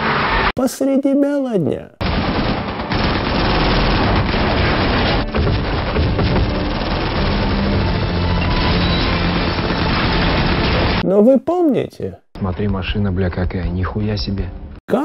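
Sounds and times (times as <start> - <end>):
automatic gunfire: 2.0 - 8.4.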